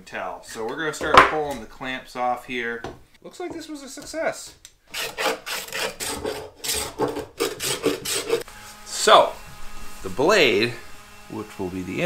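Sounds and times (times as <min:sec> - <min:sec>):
hand sanding wood: 0:05.0 - 0:12.0.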